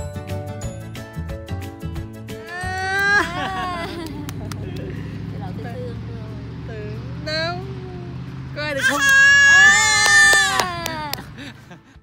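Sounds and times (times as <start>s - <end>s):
toddler squealing with delight: 2.4s - 3.9s, 8.8s - 11.2s.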